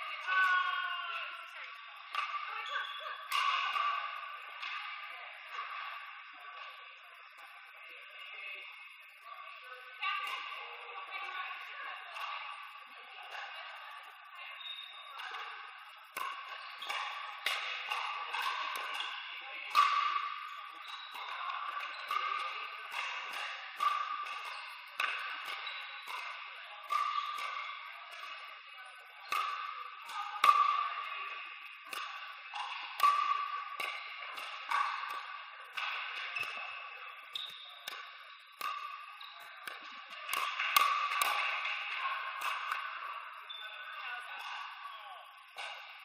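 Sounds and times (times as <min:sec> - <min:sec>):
paddles hitting plastic ball: 0:29.3 - 0:43.0.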